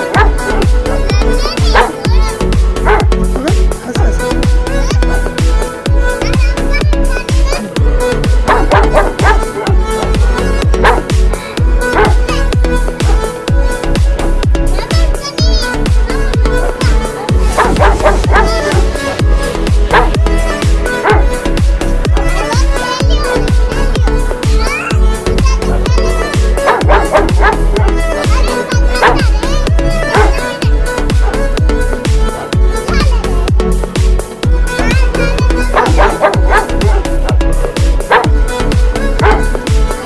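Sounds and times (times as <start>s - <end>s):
dog yipping: 0.0s - 0.7s, 1.5s - 3.1s, 8.4s - 9.8s, 10.7s - 11.1s, 11.8s - 12.4s, 16.6s - 19.0s, 19.9s - 20.2s, 20.8s - 21.5s, 25.6s - 29.4s, 30.0s - 31.5s, 35.4s - 37.4s, 38.0s - 38.4s, 39.2s - 39.6s
puppy barking and yipping: 0.0s - 5.1s, 8.1s - 14.0s, 14.8s - 33.1s, 34.7s - 40.0s
electronic dance music: 0.0s - 40.0s.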